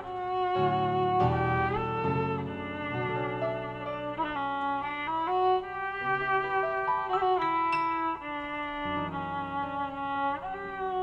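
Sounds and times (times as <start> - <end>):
band low accompaniment: 0.0 - 11.0
bowed string tango melody: 0.0 - 11.0.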